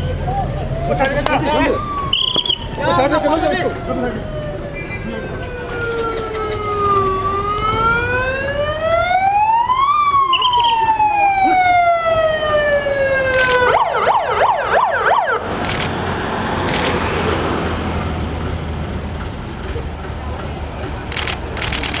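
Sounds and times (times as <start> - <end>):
vehicle siren wailing: 0.0 - 17.7
loud street noise: 0.0 - 22.0.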